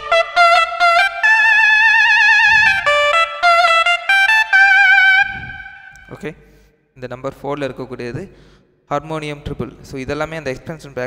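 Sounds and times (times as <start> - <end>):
reedy keyboard melody with vibrato: 0.0 - 6.2.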